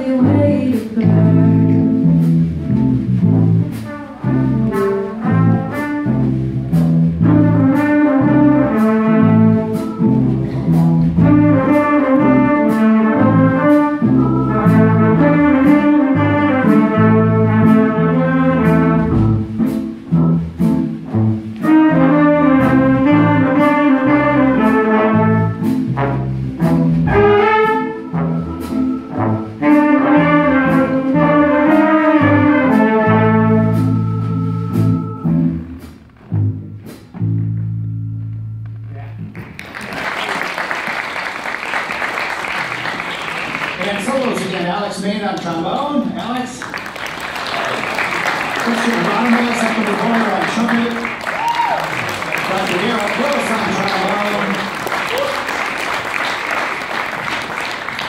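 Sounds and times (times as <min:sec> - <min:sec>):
bass line: 0:00.0 - 0:39.6
big band brass and saxophone riffs: 0:01.0 - 0:37.4, 0:47.3 - 0:58.0.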